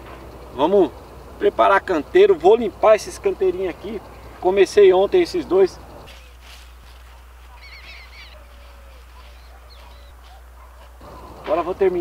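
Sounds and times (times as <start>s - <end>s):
birds chirping faintly: 0.0s - 12.0s.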